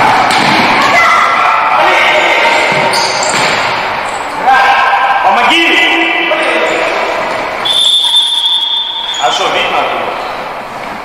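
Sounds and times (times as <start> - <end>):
shouting voices echoing in hall: 0.0 - 10.6.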